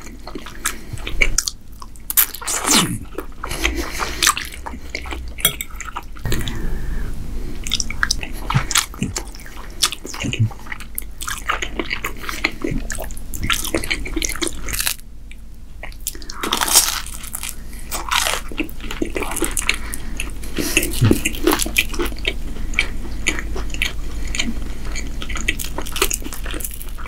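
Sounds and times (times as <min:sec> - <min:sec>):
person chewing food: 0:00.0 - 0:27.0.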